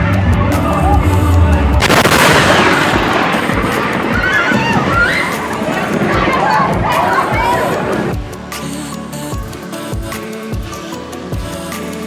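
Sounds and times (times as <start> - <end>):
loud crackling: 0.4 - 8.2
people shouting: 0.5 - 8.2
thunder crack: 1.6 - 8.2.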